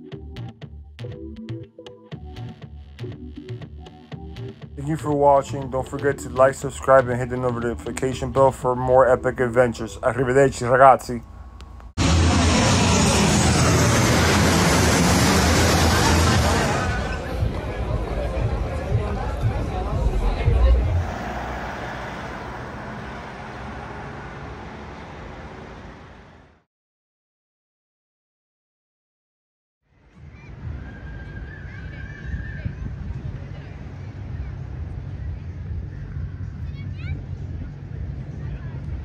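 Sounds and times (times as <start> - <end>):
jet airliner engines roaring: 12.0 - 26.4
wind rumble on microphone: 30.2 - 39.0.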